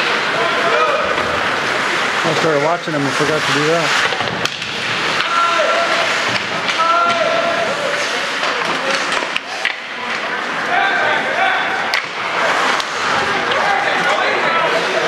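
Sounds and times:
players shouting: 0.0s - 4.0s, 4.9s - 15.0s
skate blades scraping ice: 0.0s - 10.7s
hockey sticks and puck clacking: 0.0s - 15.0s.

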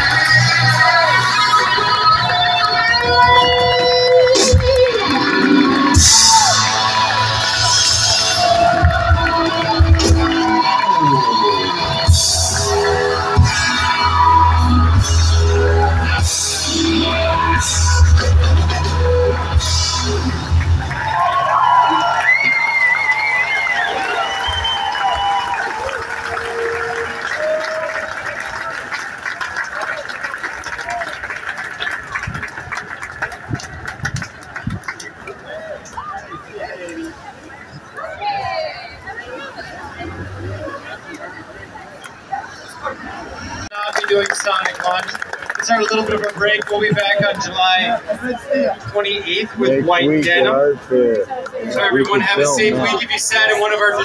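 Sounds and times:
electric guitar: 0.0s - 20.9s
bass line: 0.0s - 21.3s
crowd voices: 0.0s - 54.0s
street noise: 0.0s - 54.0s.

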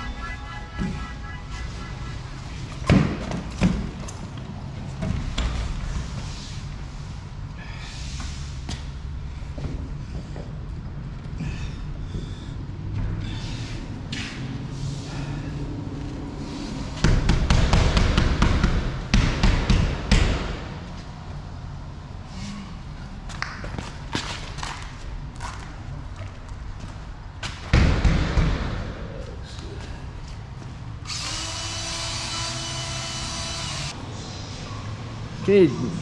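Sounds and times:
steady whine: 0.0s - 2.8s.

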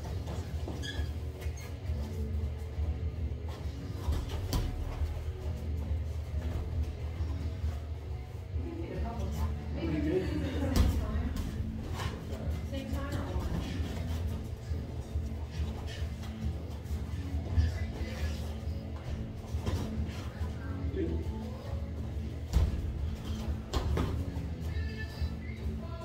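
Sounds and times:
background music: 0.0s - 26.0s
steady low hum: 0.0s - 26.0s.

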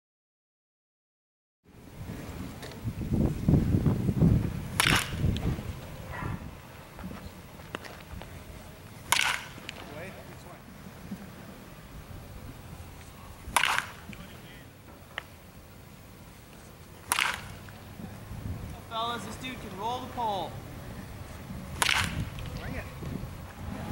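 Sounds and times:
bat cracking a ball: 4.7s - 6.4s, 9.0s - 9.9s, 13.5s - 14.3s, 17.0s - 17.8s, 21.7s - 22.6s.

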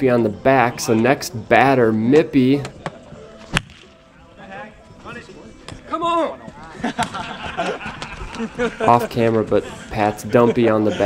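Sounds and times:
bat smacking plastic ball: 2.6s - 3.9s.

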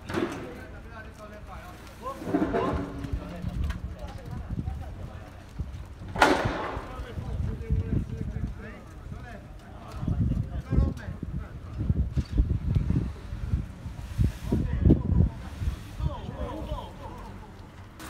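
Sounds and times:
people talking and calling: 0.0s - 18.0s
wind rumbling on microphone: 1.5s - 17.8s.

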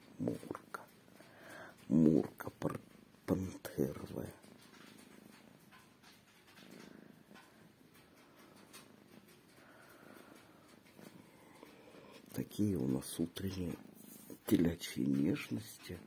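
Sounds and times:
person speaking: 0.0s - 1.0s, 1.8s - 4.5s, 11.4s - 16.0s
cat purring: 0.0s - 16.0s.

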